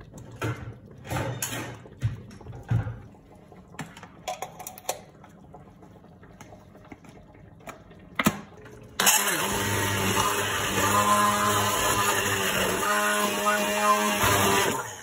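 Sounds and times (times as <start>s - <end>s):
immersion blender motor hum: 9.0s - 15.0s.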